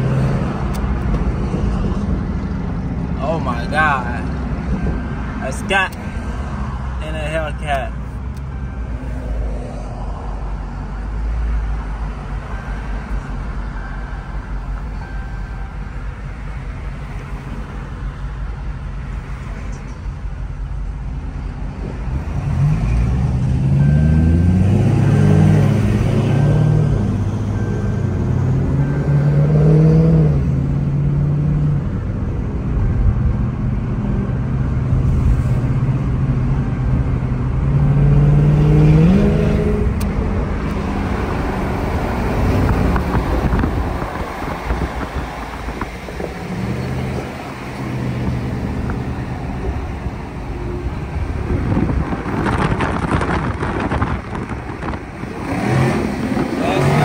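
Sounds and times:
road and tyre noise: 0.0s - 57.0s
car engines accelerating hard: 21.7s - 57.0s.

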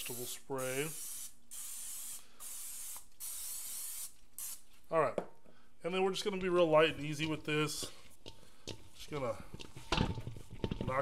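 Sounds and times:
aerosol spray hissing: 0.0s - 4.6s.

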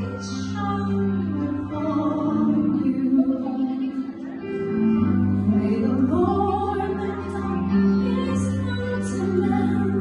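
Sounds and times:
instrumental accompaniment: 0.0s - 10.0s
woman singing into a microphone: 0.0s - 10.0s.

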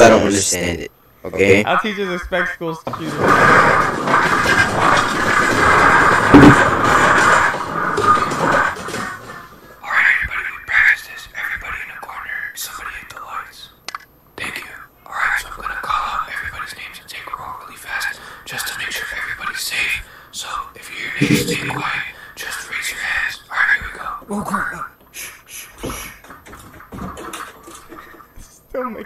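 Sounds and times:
people whispering: 9.0s - 13.7s, 14.4s - 26.1s
loud dense noise: 21.2s - 22.0s.

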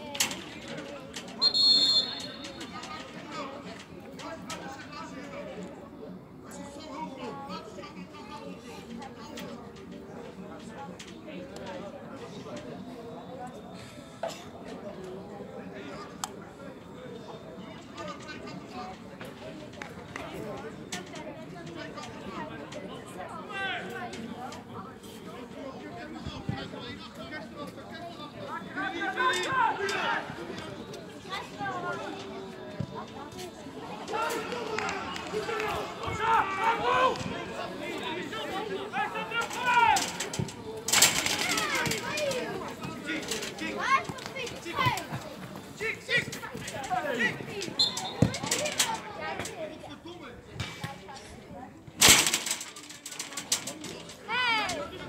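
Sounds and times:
voices calling and shouting: 0.1s - 6.8s, 15.6s - 55.0s.

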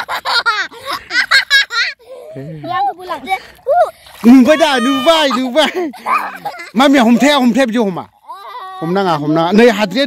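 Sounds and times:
girl laughing: 0.0s - 2.4s, 4.8s - 6.8s.

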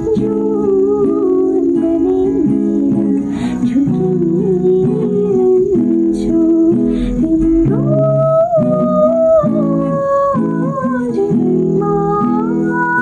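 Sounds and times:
acoustic guitar chords: 0.0s - 13.0s
woman singing: 0.0s - 13.0s.

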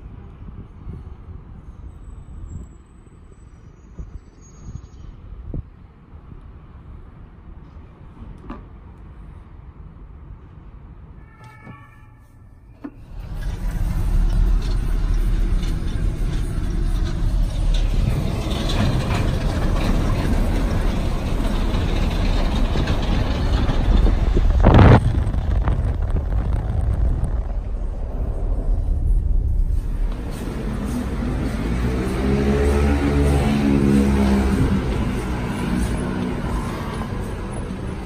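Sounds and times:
car road and engine rumble: 12.6s - 38.0s.

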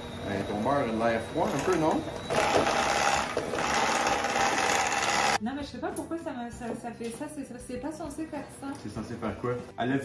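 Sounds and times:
immersion blender motor running: 1.6s - 5.4s.

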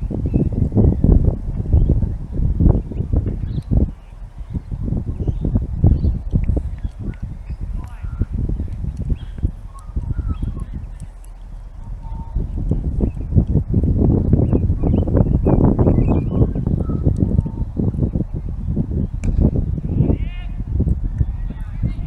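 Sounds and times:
wind buffeting microphone: 0.0s - 22.0s
faint bird chirps: 9.1s - 11.4s, 14.4s - 17.7s.

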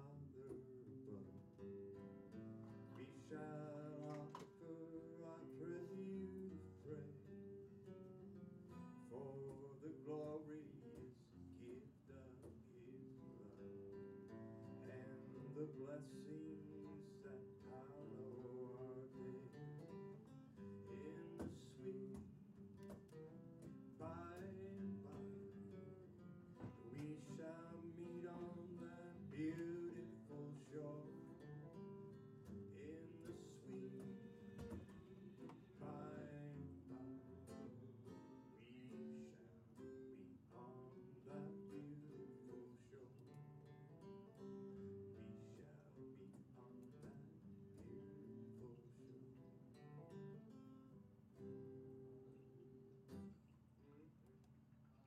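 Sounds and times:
man singing: 0.0s - 1.7s, 2.8s - 7.8s, 9.0s - 22.9s, 23.6s - 50.1s
acoustic guitar strumming: 0.0s - 53.4s.

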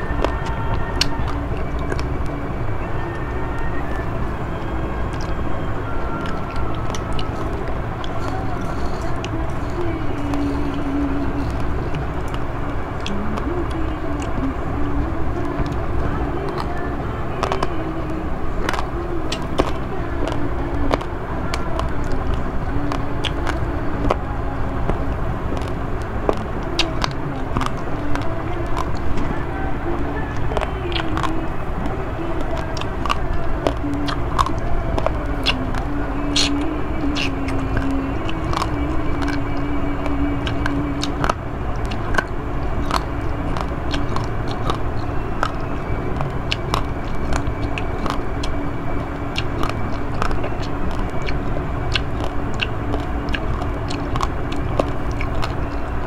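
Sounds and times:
close-up chewing: 0.0s - 56.0s
low rumble: 0.0s - 56.0s.

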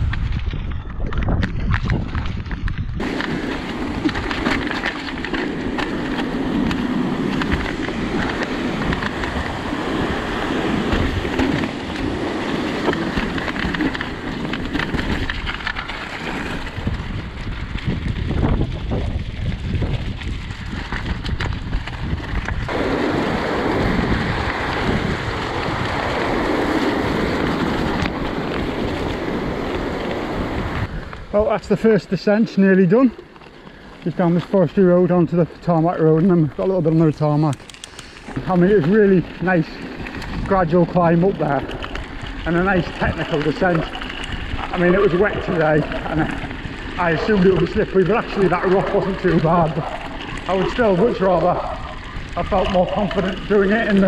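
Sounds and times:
bike rattling: 0.0s - 54.0s
wind buffeting microphone: 0.0s - 54.0s
tyres running over loose stone: 0.1s - 22.8s, 31.6s - 54.0s.

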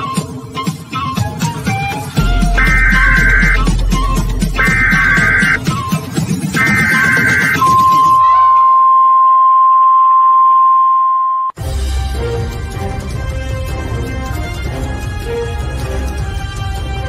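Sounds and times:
music track: 2.1s - 8.6s
countdown timer beeps: 2.4s - 5.7s, 6.6s - 11.5s
long low beep: 2.5s - 3.8s, 4.6s - 5.6s, 6.6s - 11.6s.

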